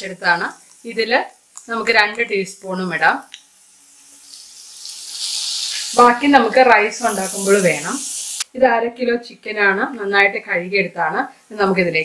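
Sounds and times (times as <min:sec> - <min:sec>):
paste sizzling in hot oil: 0:00.0 - 0:08.5.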